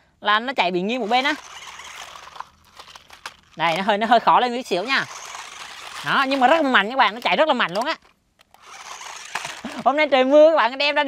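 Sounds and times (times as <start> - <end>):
person speaking: 0.3 - 2.4, 3.6 - 8.8
toy car motors whirring: 0.9 - 10.4.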